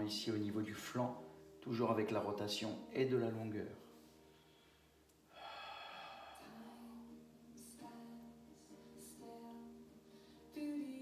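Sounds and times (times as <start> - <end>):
soft background music: 0.0 - 11.0
person breathing: 4.1 - 7.1, 10.1 - 10.5.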